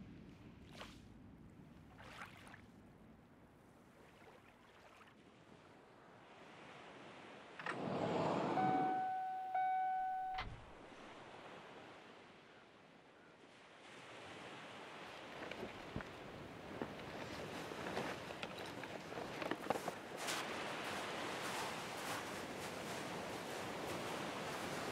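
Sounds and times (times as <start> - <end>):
electronic beep: 8.5 - 10.5.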